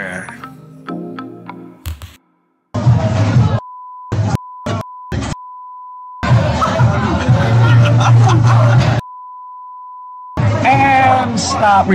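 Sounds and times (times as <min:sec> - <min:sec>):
censor bleep tone: 0:03.6 - 0:06.2, 0:09.0 - 0:10.4.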